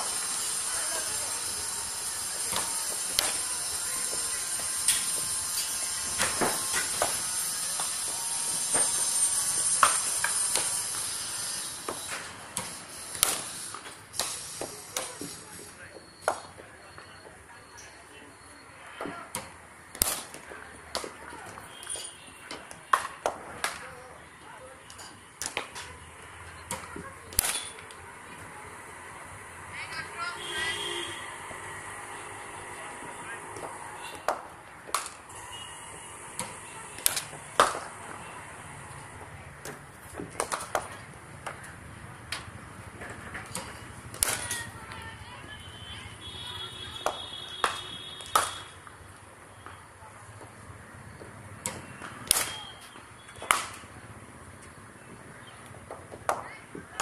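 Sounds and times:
cricket bat striking ball: 0:36.5 - 0:38.2, 0:47.0 - 0:48.7, 0:51.6 - 0:52.8, 0:53.4 - 0:53.8.

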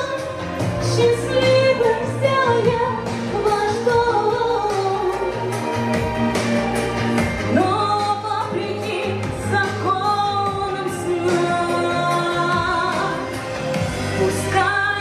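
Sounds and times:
woman singing into a microphone: 0:00.0 - 0:06.3, 0:07.4 - 0:15.0
instrumental backing music: 0:00.0 - 0:15.0.

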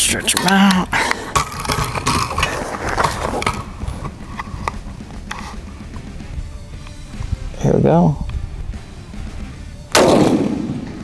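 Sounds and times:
bipod metallic clicks and rattle: 0:00.3 - 0:05.5.

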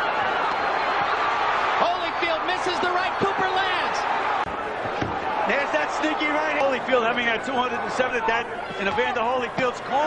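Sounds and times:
arena crowd noise: 0:00.0 - 0:10.0
shouting voices: 0:01.3 - 0:04.3.

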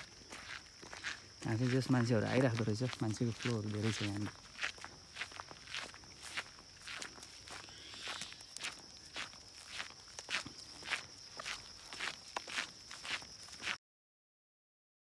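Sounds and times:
footsteps on dirt trail: 0:00.0 - 0:13.8.

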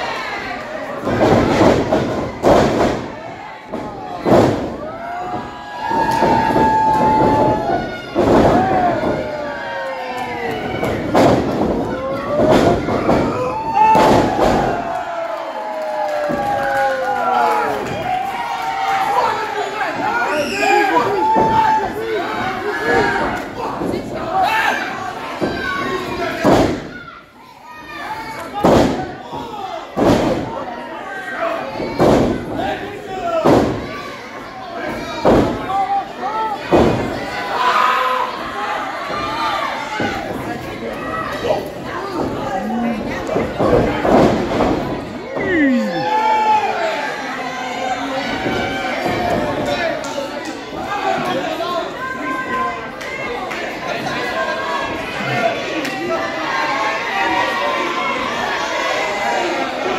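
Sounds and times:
crowd shouting: 0:00.0 - 0:59.9.

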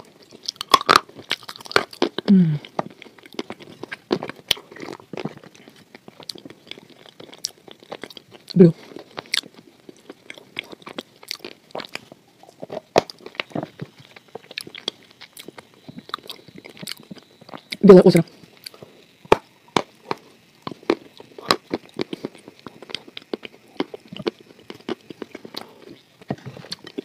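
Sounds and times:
chewing and crunching cereal: 0:00.0 - 0:27.0
person humming: 0:02.2 - 0:02.7.

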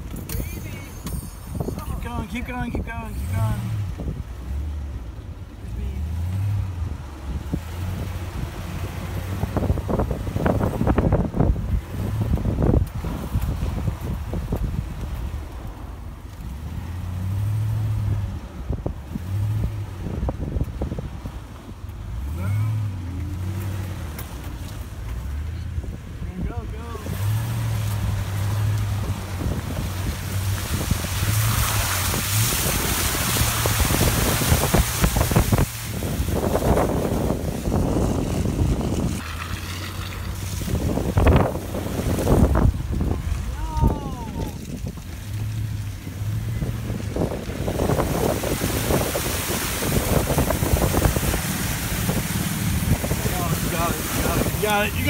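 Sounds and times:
wind on microphone: 0:06.7 - 0:15.9, 0:17.4 - 0:22.1, 0:25.6 - 0:55.0
pickup truck engine revving: 0:16.4 - 0:26.2, 0:26.8 - 0:55.0.

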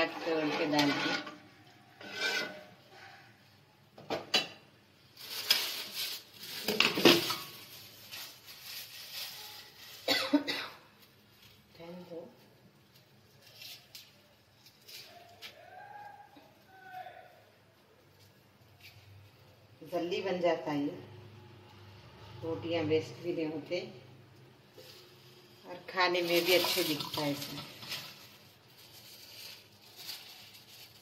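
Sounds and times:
ladle scraping metal pot: 0:00.0 - 0:03.1, 0:26.2 - 0:28.2.

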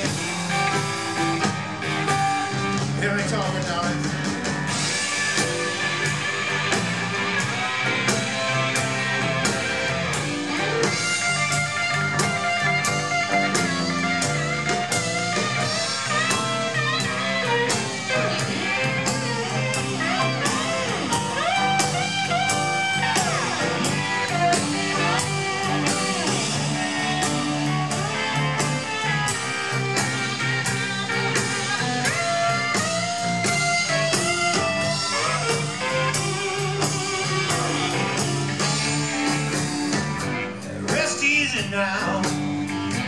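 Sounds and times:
blues band playing: 0:00.0 - 0:43.0
electric guitar with bent notes: 0:00.0 - 0:43.0.

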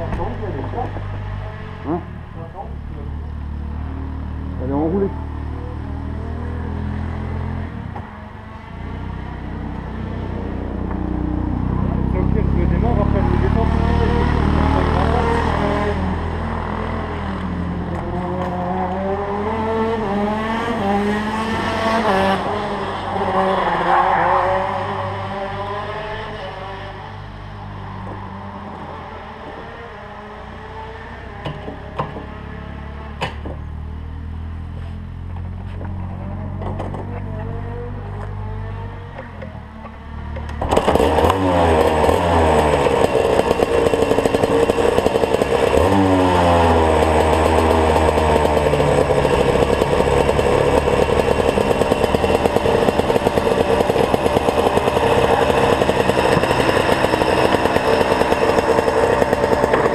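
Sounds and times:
kart engines revving: 0:00.0 - 0:59.9.

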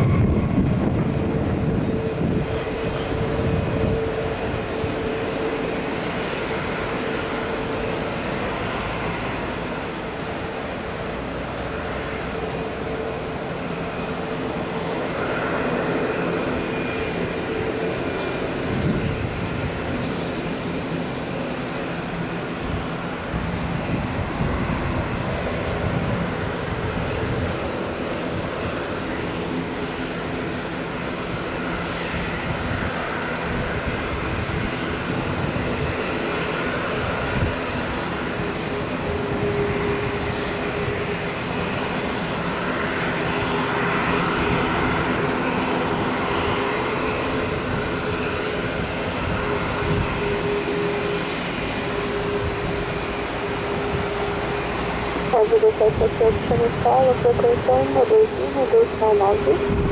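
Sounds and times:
jet engines roaring: 0:00.0 - 0:59.9.

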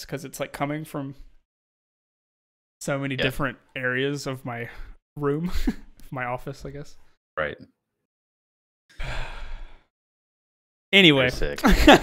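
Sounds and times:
man sighing: 0:08.9 - 0:09.8.

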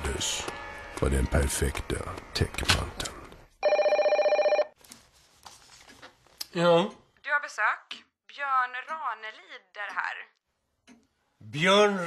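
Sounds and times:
desk telephone ringing: 0:03.6 - 0:04.8.

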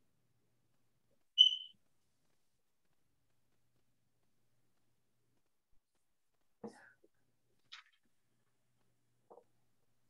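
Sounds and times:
short high-pitched beep: 0:01.4 - 0:01.7.

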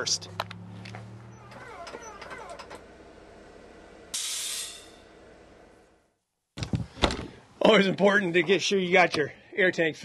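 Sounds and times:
loud hiss of released air: 0:04.1 - 0:05.0
air compressor running: 0:04.1 - 0:05.2.

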